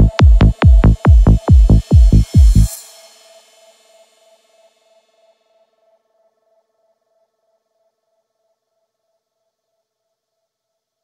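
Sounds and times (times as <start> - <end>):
kick drum: 0.0 - 2.8
cymbal wash: 0.2 - 6.9.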